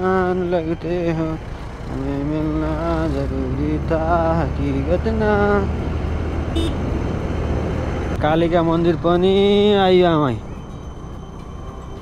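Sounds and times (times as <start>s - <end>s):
scooter engine and road rumble: 0.0s - 12.0s
voice: 8.2s - 10.4s.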